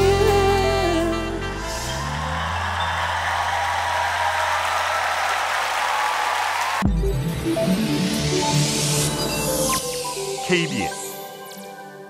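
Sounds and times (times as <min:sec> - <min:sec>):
person singing: 0:00.0 - 0:01.9
audience applause: 0:01.7 - 0:06.9.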